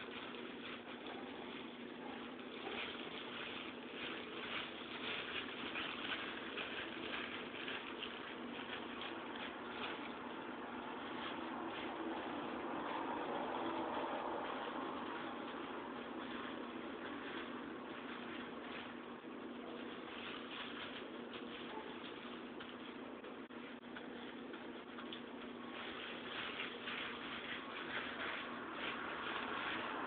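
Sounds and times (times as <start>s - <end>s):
plastic glove crinkling on hair: 0.0s - 30.0s.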